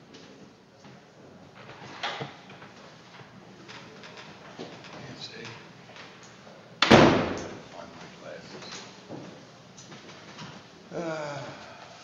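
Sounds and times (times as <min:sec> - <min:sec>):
door banging shut: 0:06.8 - 0:07.6.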